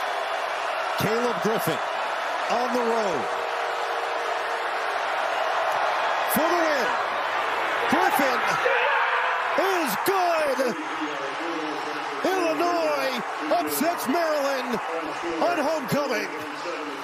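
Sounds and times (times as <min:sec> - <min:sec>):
loud shouts and yells: 0:00.0 - 0:17.0
stadium crowd noise: 0:00.0 - 0:17.0.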